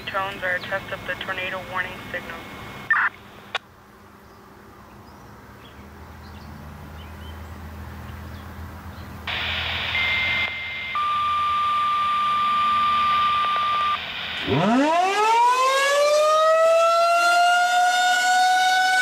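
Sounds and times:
radio channel hiss: 0.0 - 3.6, 9.3 - 11.0, 12.1 - 14.7
short high beep: 10.0 - 14.0.

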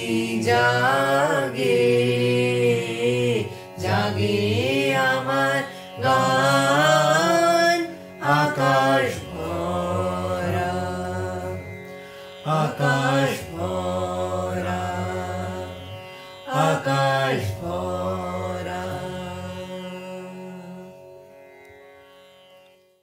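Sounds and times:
boy singing: 0.0 - 11.6, 16.5 - 20.8
man singing: 0.0 - 11.8, 12.4 - 15.9, 16.5 - 20.9
string instrument: 0.0 - 23.0.

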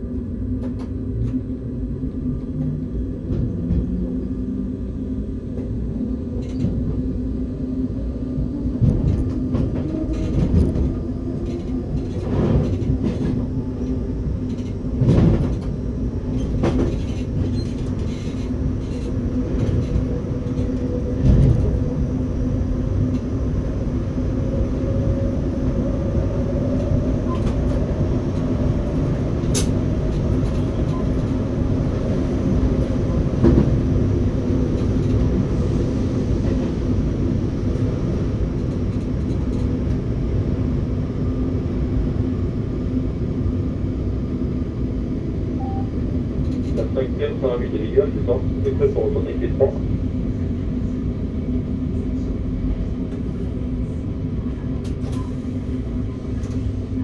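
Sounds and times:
train motor hum: 0.0 - 57.0
train rumbling along track: 0.0 - 57.0.

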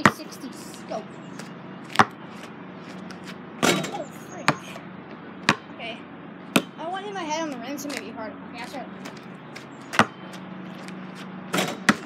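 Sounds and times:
basketball bouncing on pavement: 0.0 - 0.8, 1.4 - 5.7, 6.5 - 6.8, 7.5 - 12.0
basketball hitting hoop: 3.6 - 4.6, 11.5 - 12.0.

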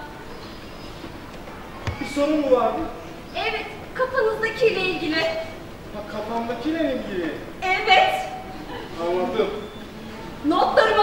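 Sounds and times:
hall background noise: 0.0 - 11.0.

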